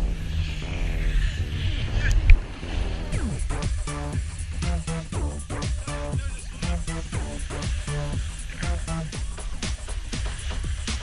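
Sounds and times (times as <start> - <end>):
snowboard scraping over snow: 0.0 - 11.0.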